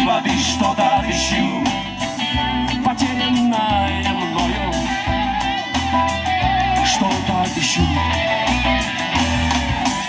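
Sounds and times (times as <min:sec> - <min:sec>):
bass line: 0:00.0 - 0:10.0
keyboards: 0:00.0 - 0:10.0
lead electric guitar: 0:00.0 - 0:10.0.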